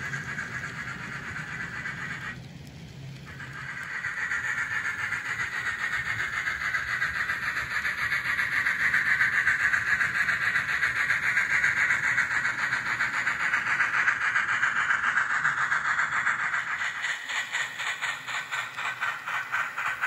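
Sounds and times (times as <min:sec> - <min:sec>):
model locomotive motor and gears: 0:00.0 - 0:20.0
model train wheels rattling on rails: 0:00.0 - 0:20.0.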